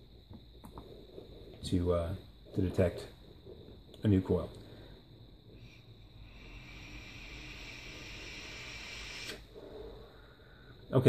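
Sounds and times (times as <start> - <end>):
vape coil sizzling hiss: 5.0 - 10.8.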